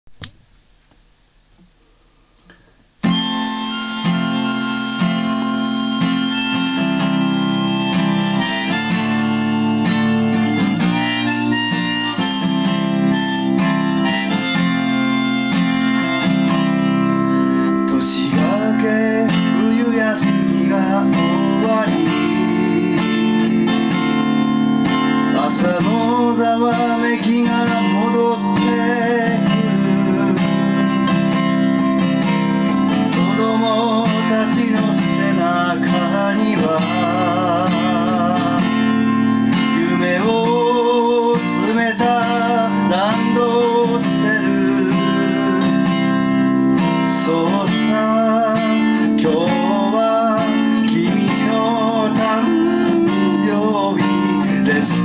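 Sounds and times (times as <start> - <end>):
acoustic guitar strummed chords: 2.4 - 55.0
harmonica melody: 3.0 - 55.0.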